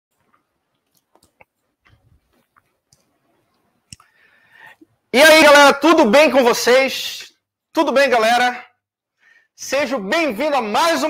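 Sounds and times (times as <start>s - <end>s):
faint clicks: 0.2s - 4.2s.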